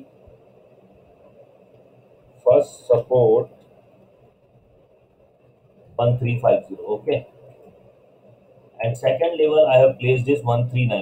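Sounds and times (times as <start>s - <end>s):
faint background hiss: 0.0s - 11.0s
person speaking: 2.4s - 3.6s, 5.9s - 7.5s, 8.8s - 11.0s.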